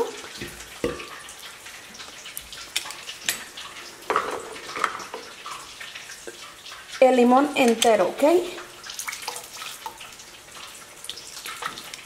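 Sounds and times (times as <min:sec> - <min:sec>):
juice squirting and dripping into jar: 0:08.8 - 0:12.0.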